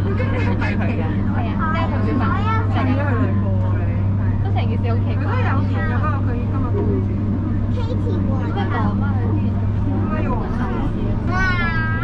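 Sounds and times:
electric train hum: 0:00.0 - 0:12.0
people talking: 0:00.0 - 0:12.0.

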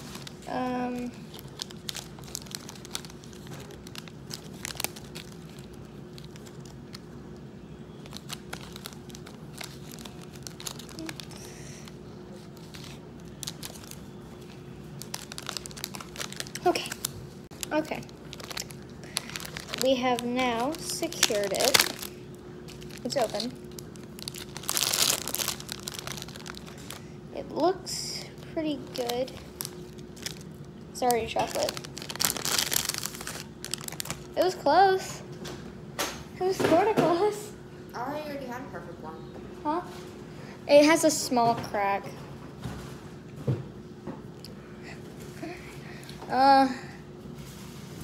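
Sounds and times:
plastic wrapper crinkling: 0:00.0 - 0:07.1, 0:07.9 - 0:27.0, 0:28.4 - 0:34.6.

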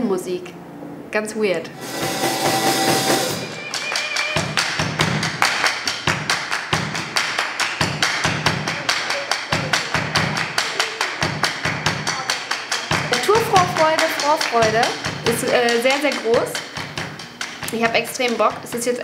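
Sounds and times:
low drum beat: 0:07.8 - 0:18.8
fast percussive tick: 0:12.8 - 0:19.0.

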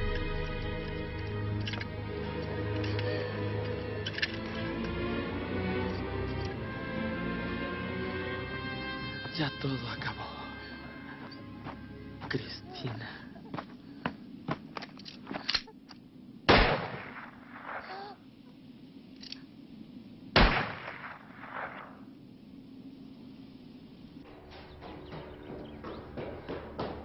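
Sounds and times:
gunshots with echo: 0:20.4 - 0:22.0.

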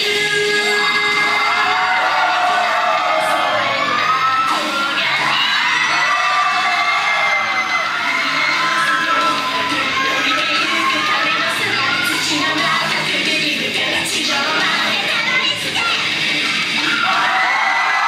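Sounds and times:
hard rock over speakers: 0:00.0 - 0:17.6
audience shouting and cheering: 0:00.0 - 0:18.0.

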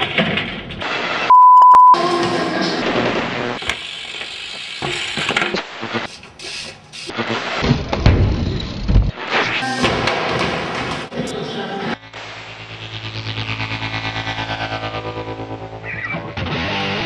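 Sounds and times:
electronic beep: 0:01.3 - 0:02.0.

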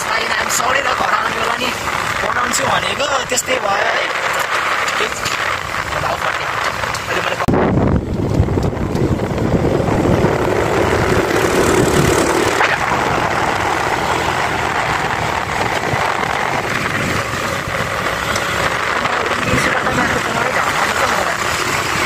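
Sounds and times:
road and wind noise: 0:00.0 - 0:22.0
scooter engine running: 0:00.0 - 0:22.0.

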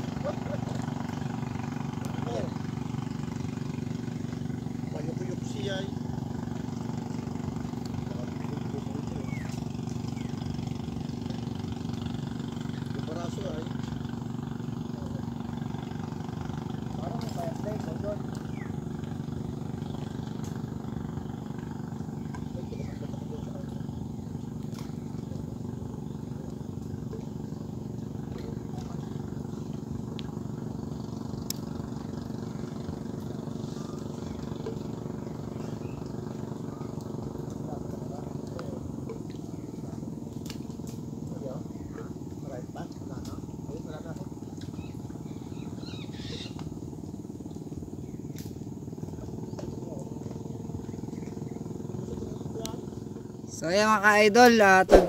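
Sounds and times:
steady engine hum: 0:00.0 - 0:55.0.

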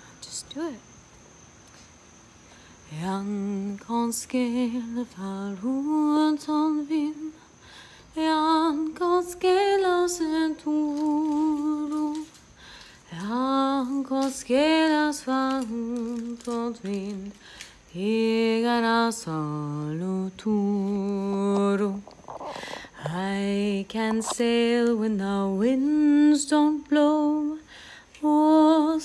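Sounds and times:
woman singing unaccompanied: 0:00.0 - 0:01.0, 0:02.8 - 0:29.0.

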